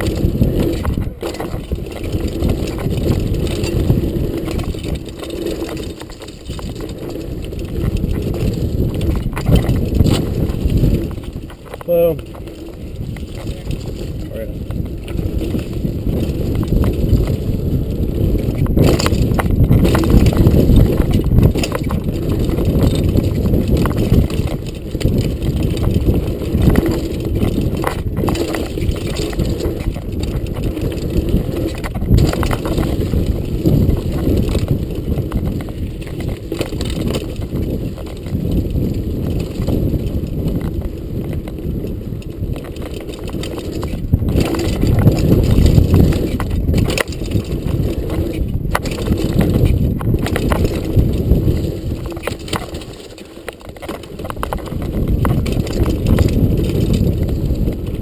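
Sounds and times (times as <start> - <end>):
bike knocking over bumps: 0.0 - 58.0
tyres rumbling on dirt: 0.0 - 58.0
wind on microphone: 0.0 - 58.0.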